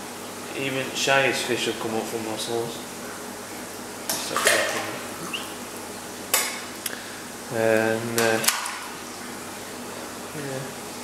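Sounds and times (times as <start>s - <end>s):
fish splashing and slurping water: 1.7s - 7.4s.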